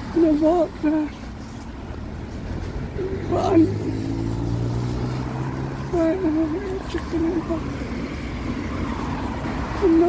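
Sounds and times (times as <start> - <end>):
vehicle engine passing: 1.4 - 10.0.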